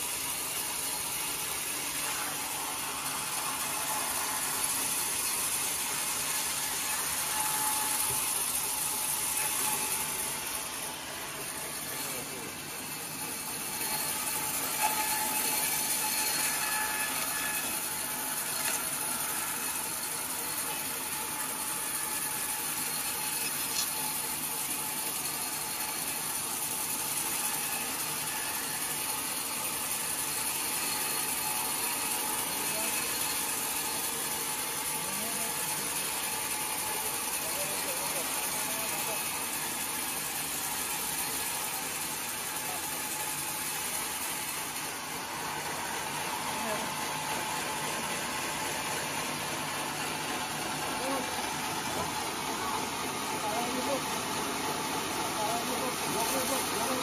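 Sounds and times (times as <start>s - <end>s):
band saw cutting log: 0.0s - 57.0s.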